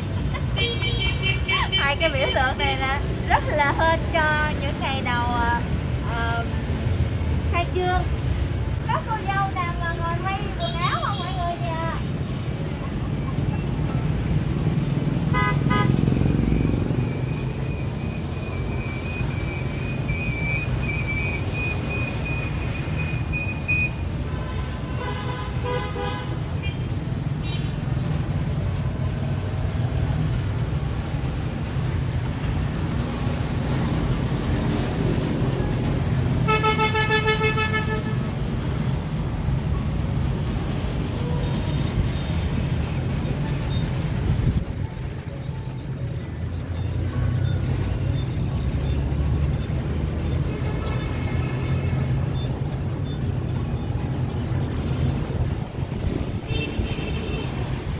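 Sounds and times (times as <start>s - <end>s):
traffic rumbling: 0.0s - 57.9s
vehicle horns honking: 15.3s - 16.0s, 24.4s - 26.8s, 36.4s - 38.2s.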